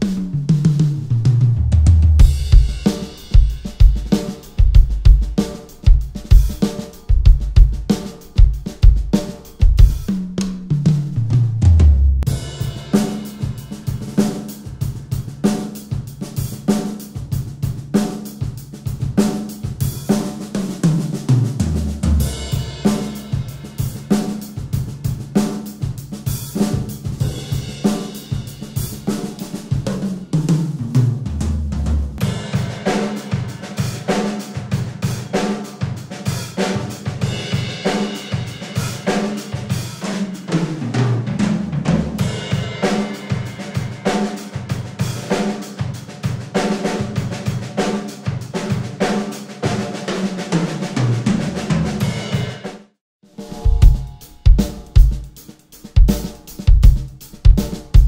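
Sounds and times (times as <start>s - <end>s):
tom fill: 0.0s - 47.9s, 53.3s - 58.0s
drum kit steady groove: 0.0s - 58.0s.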